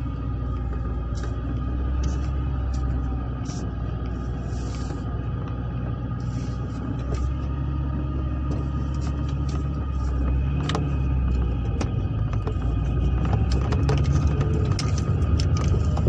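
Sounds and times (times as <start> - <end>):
car engine and road drone: 0.0 - 16.0.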